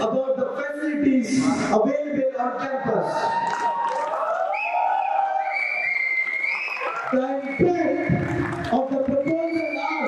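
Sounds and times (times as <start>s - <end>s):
audience cheering and shouting: 2.6s - 10.0s.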